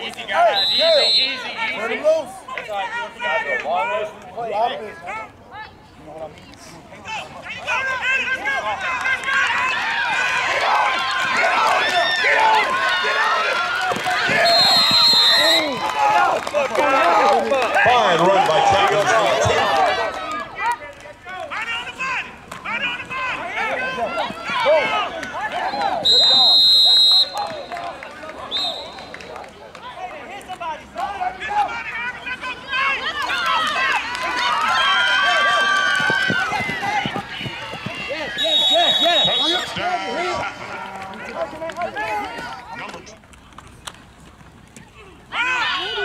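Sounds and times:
voices shouting: 0.0 - 4.2, 7.0 - 42.9, 45.0 - 46.0
referee's whistle blasts: 0.4 - 1.8, 14.3 - 15.8, 25.6 - 27.8, 28.5 - 29.2, 38.3 - 39.8.

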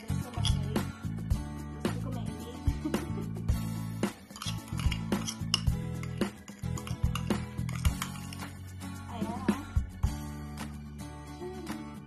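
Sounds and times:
metal spoon clinking ceramic mug: 0.0 - 0.7, 4.2 - 8.6
guitar music: 0.0 - 12.0.

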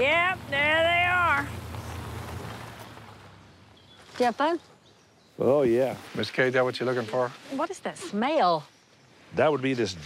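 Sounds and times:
utility vehicle engine rumble: 0.0 - 4.0.

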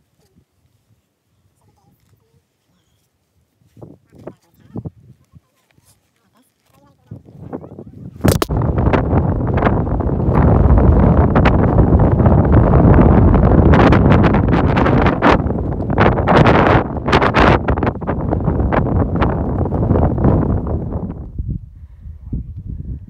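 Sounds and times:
wind buffeting microphone: 7.0 - 23.0
sharp wind pops: 8.2 - 21.7.

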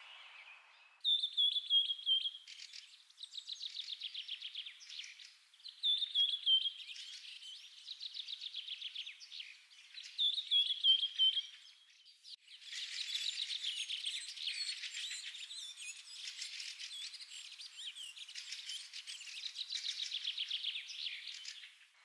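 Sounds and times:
songbirds chirping and twittering: 0.0 - 22.0.

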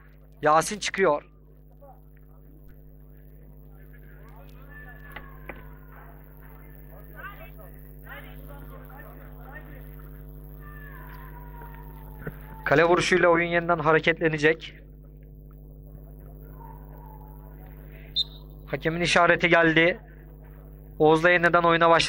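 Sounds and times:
steady electrical hum: 0.0 - 22.0
distant players calling out: 1.4 - 22.0.

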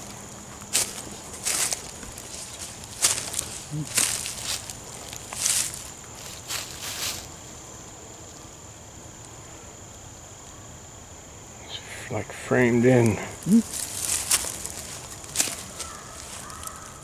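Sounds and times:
footsteps crunching through dry leaves: 0.0 - 7.4, 13.6 - 17.0.

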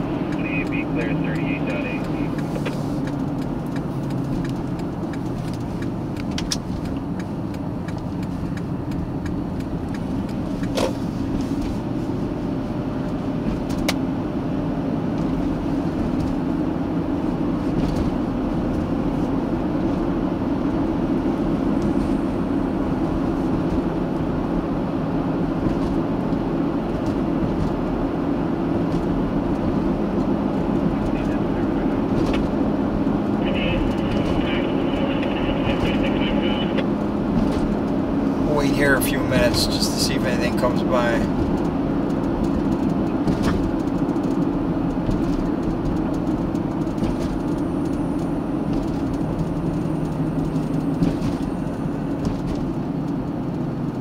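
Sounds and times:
car road and engine noise: 0.0 - 54.0.

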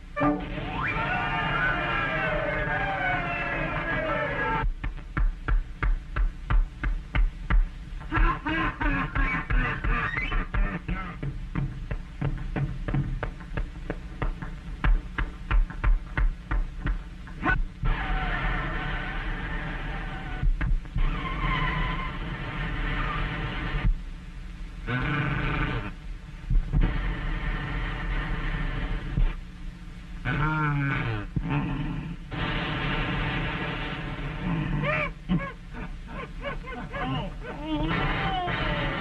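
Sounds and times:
steady hum and hiss: 0.0 - 39.0
wavering high pitched tone: 0.2 - 0.9
cartoon animal yelps: 0.6 - 4.6
cartoon animal grunt: 24.9 - 26.0, 30.2 - 32.2, 34.4 - 35.6.

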